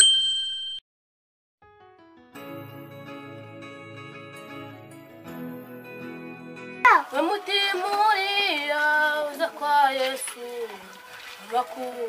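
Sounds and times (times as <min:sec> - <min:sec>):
bright bell-like ding: 0:00.0 - 0:00.8
soft music: 0:01.7 - 0:11.2.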